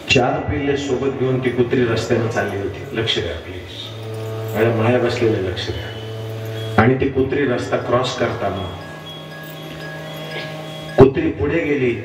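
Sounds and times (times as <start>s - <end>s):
held musical drone: 0.0s - 12.0s.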